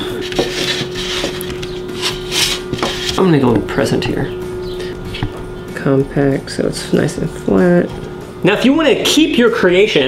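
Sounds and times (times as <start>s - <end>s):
hands rubbing soft clay: 0.2s - 3.2s.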